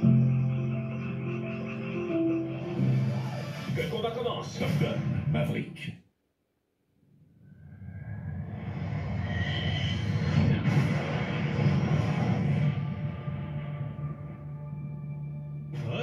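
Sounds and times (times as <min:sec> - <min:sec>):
film music: 0:00.0 - 0:05.3, 0:09.8 - 0:16.0
fighter jet engine roar: 0:07.7 - 0:14.4.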